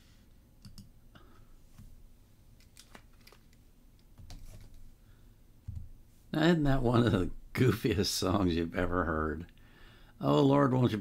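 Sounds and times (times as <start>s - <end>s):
plastic clicks of headphones: 2.6s - 4.8s.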